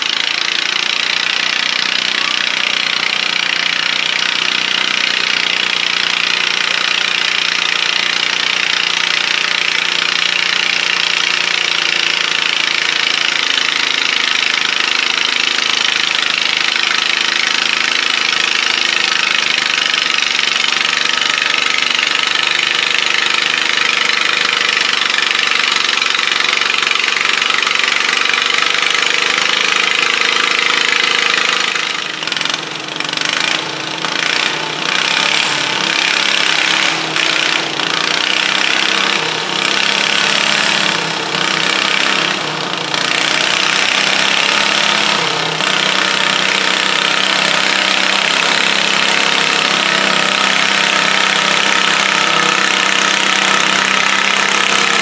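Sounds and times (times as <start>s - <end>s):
tractor engine running hard: 0.0s - 55.0s.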